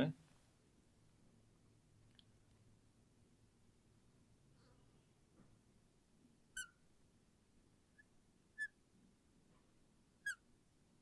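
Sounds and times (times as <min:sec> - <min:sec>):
marker squeaking on glass: 0:06.5 - 0:06.8, 0:08.0 - 0:08.8, 0:10.2 - 0:10.5.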